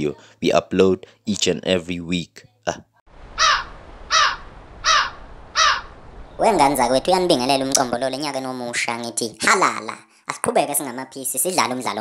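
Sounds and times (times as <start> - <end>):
bird calling: 3.4 - 6.5.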